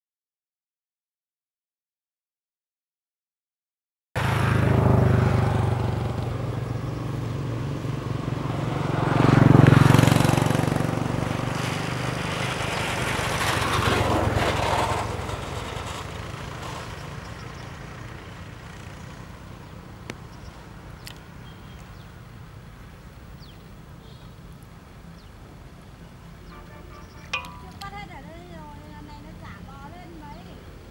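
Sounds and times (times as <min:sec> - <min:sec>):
passing vehicle engine rumble: 0:04.2 - 0:30.9.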